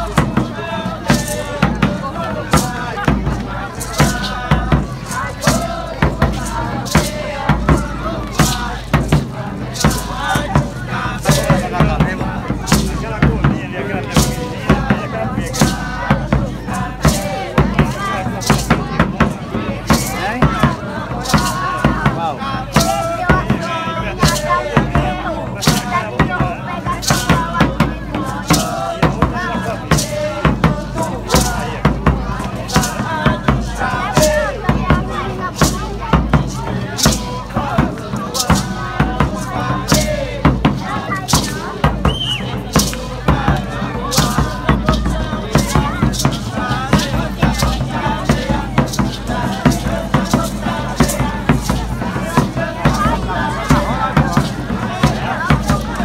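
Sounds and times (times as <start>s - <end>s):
frame drum beating: 0.0s - 56.0s
group of voices chanting: 0.0s - 56.0s.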